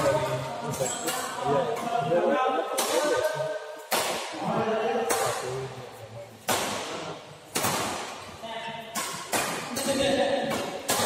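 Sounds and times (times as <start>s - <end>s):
rackets hitting shuttlecock: 2.7s - 4.4s, 5.0s - 5.5s, 6.4s - 11.0s.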